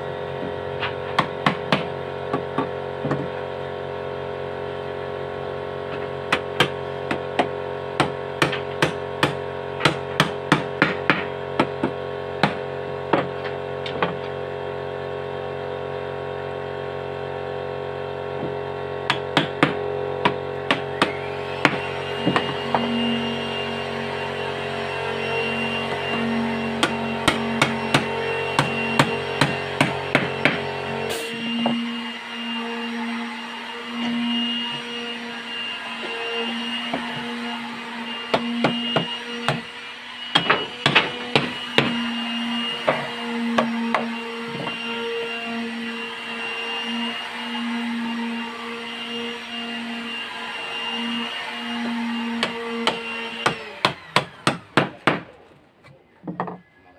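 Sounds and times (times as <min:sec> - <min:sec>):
hammer knocking wooden boards: 0:00.4 - 0:03.4, 0:06.3 - 0:14.3, 0:18.4 - 0:22.9, 0:26.8 - 0:30.6, 0:38.3 - 0:39.7, 0:40.3 - 0:42.1, 0:42.8 - 0:44.8, 0:52.4 - 0:55.4, 0:56.2 - 0:56.6.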